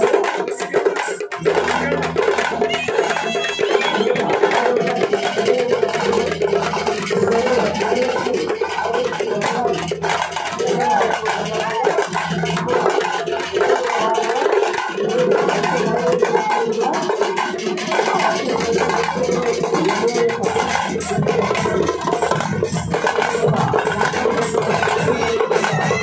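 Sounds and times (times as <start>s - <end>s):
hand drums drumming: 0.0s - 26.0s
sustained melody line: 1.4s - 11.5s.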